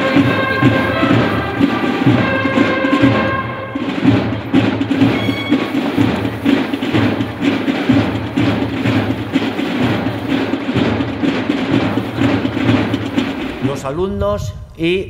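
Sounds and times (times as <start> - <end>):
band music with low notes: 0.0 - 15.0
steady drum beat: 0.0 - 15.0.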